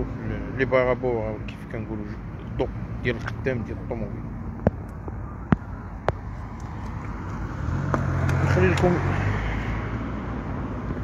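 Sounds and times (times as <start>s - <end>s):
car engine humming: 0.0s - 11.0s
street traffic: 0.0s - 11.0s.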